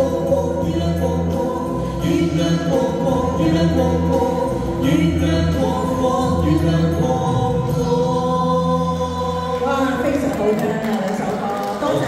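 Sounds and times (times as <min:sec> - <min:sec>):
man and woman singing duet: 0:00.0 - 0:10.4
amplified backing music: 0:00.0 - 0:12.0.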